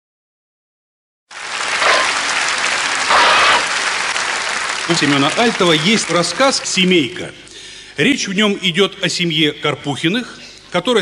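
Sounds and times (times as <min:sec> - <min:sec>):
audience applause: 0:01.3 - 0:06.9.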